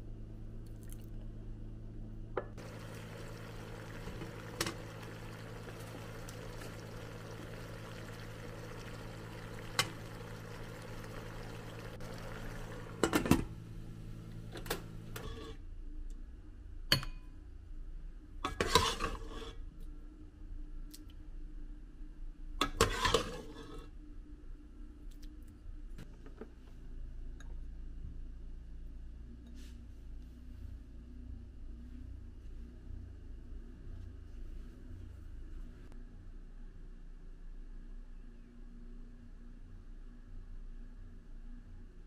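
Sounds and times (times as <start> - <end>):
low hum: 0.0 - 16.2
water boiling and bubbling: 2.6 - 15.3.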